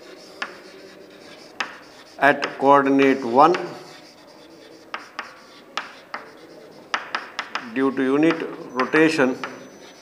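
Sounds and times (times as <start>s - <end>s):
chalk scratching: 0.0s - 10.0s
chalk tapping on chalkboard: 0.0s - 10.0s.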